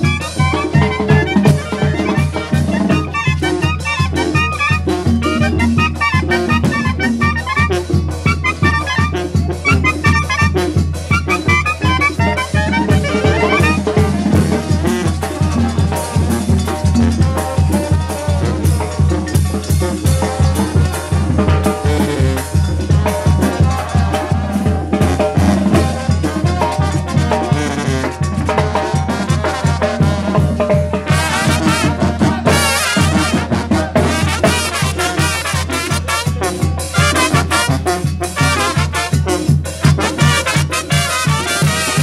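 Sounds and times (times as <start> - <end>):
clarinets playing fast melody: 0.0 - 18.8, 31.1 - 39.2, 39.8 - 42.0
brass band: 0.0 - 42.0
drums and cymbals: 0.0 - 42.0.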